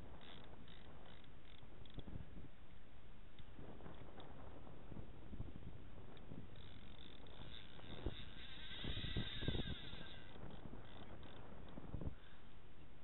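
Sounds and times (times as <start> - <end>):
wind buffeting microphone: 3.4 - 12.3.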